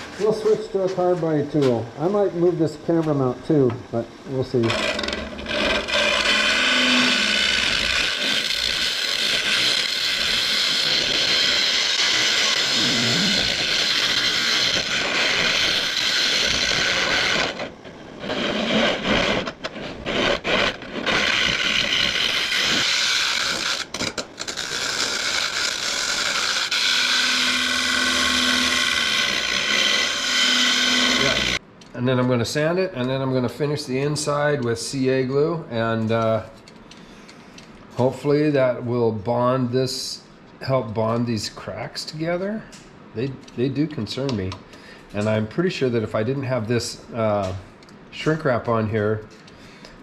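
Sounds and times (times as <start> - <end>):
lathe tool scraping wood: 4.5 - 31.6.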